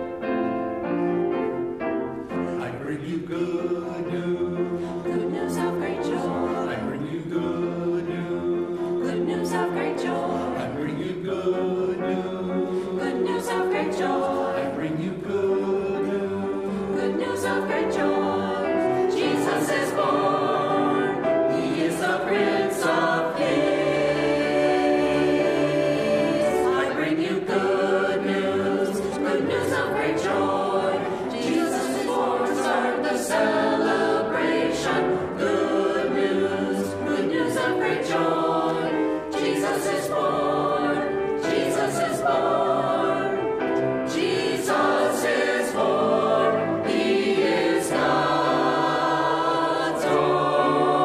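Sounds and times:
mixed choir singing: 0.0 - 51.0.

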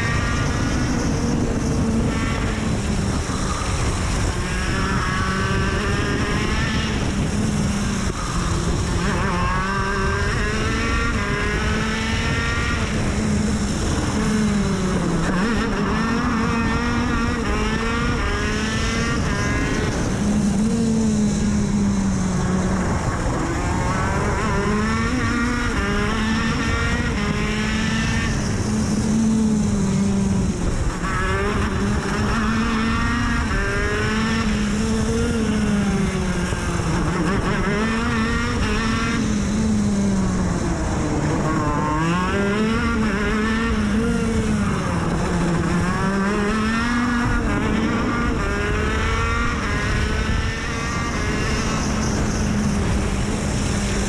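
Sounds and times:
kart engine accelerating and braking: 0.0 - 54.0.

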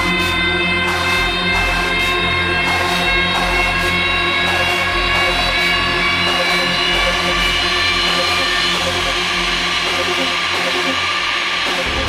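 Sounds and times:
trance music with synth pads: 0.0 - 12.0.

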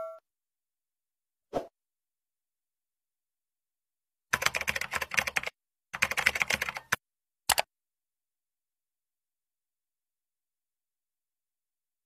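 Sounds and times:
computer keyboard typing: 4.3 - 7.7.

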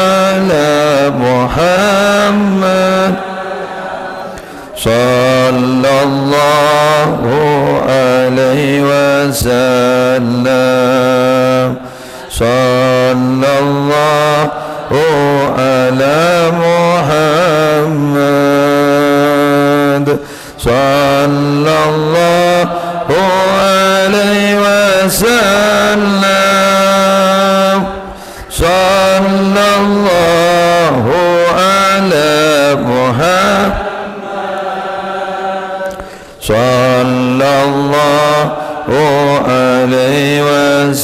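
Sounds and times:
melodic chanting: 0.0 - 41.0.

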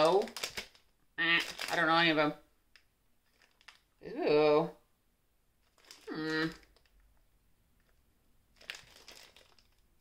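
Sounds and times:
plastic wrapper crinkling: 0.0 - 4.0, 5.6 - 7.2, 7.8 - 10.0.

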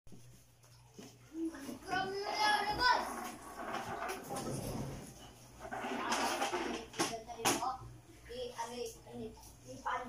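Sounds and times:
plastic chair scraping on floor: 1.9 - 7.1.

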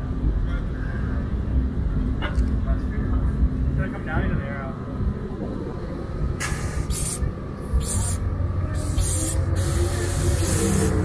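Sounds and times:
car engine low rumble: 0.0 - 11.0
sharp hiss of air: 6.4 - 8.2, 8.8 - 11.0.

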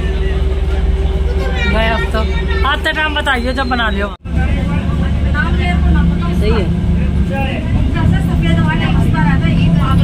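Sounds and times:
vehicle engine drone and road noise: 0.0 - 10.0
voices talking: 0.0 - 10.0.

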